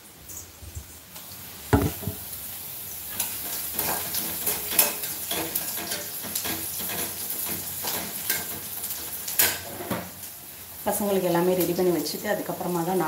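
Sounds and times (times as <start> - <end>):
food sizzling in a pan: 0.0 - 13.0.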